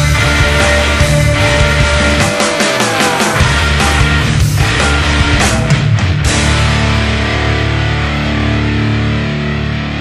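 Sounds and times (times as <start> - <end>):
rock band crashing hit: 0.0 - 7.9
guitar chord ringing: 0.0 - 10.0.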